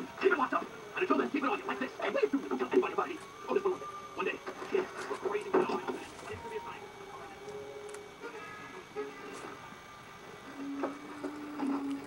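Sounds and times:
faint television sound: 0.0s - 9.8s.

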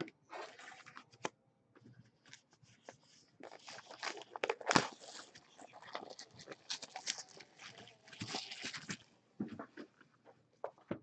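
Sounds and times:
card wrappers rustling: 3.4s - 9.0s.

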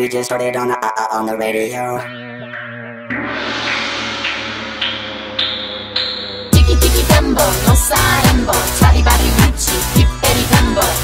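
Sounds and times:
electronic pop music: 0.6s - 11.0s
sustained synth chord: 2.0s - 7.7s
sharp hits: 3.1s - 8.0s.

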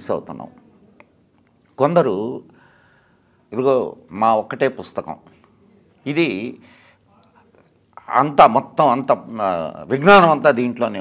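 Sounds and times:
man speaking: 0.0s - 0.7s, 1.8s - 2.5s, 3.5s - 11.0s.

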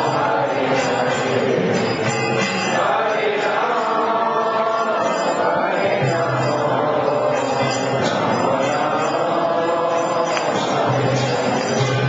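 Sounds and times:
group chanting over music: 0.0s - 12.0s.

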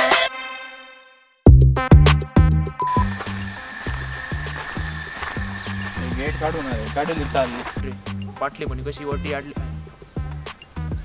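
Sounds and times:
background music with low beat: 1.5s - 11.0s.

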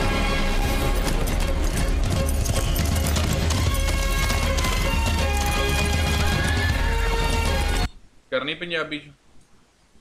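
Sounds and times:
film music: 0.0s - 8.1s
horse hoofbeats galloping: 0.6s - 7.9s.

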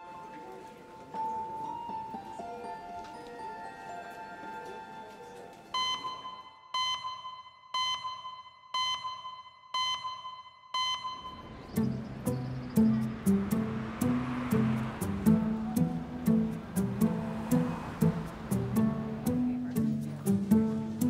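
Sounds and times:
plucked guitar music: 11.8s - 21.0s.

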